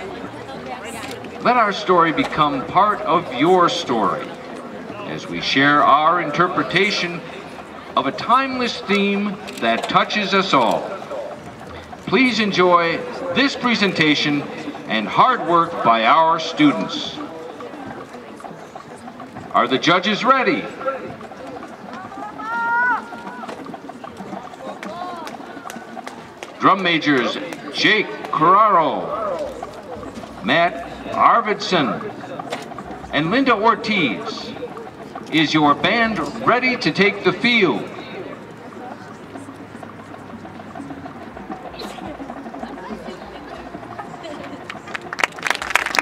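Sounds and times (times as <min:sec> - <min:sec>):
stadium crowd murmur: 0:00.0 - 0:46.0.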